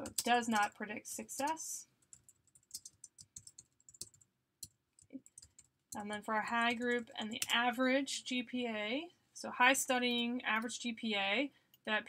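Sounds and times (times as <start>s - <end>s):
computer keyboard keystrokes: 0.0s - 0.8s, 2.1s - 6.0s, 6.7s - 7.6s.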